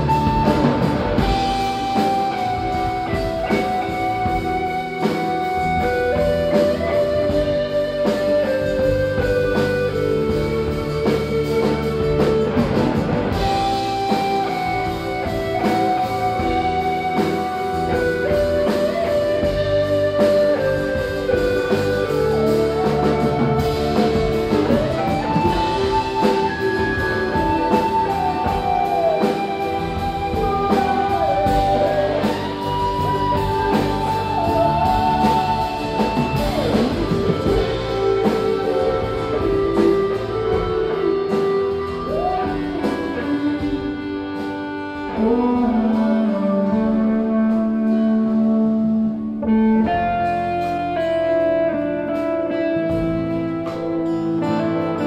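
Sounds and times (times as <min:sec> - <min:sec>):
acoustic guitar: 0:00.0 - 0:55.0
electric guitar lead: 0:00.0 - 0:55.0
keyboard: 0:00.0 - 0:55.0.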